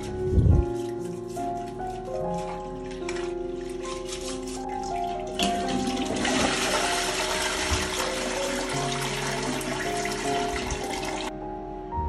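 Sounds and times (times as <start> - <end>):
background music: 0.0 - 12.0
toilet flushing: 4.7 - 11.3.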